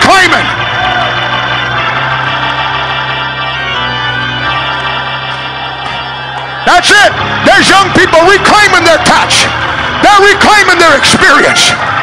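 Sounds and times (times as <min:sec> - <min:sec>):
organ sustained chord: 0:00.0 - 0:12.0.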